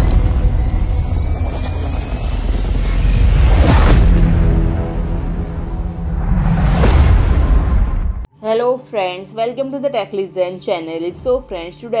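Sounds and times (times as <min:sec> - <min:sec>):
deep cinematic rumble: 0:00.0 - 0:08.3.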